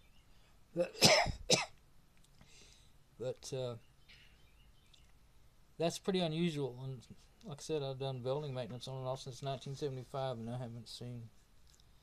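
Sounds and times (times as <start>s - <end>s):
man coughing: 0.8s - 1.7s.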